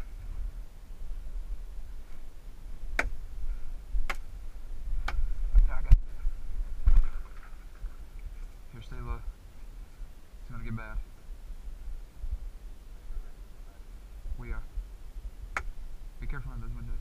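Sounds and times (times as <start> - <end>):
wind rumble: 0.0 - 17.0.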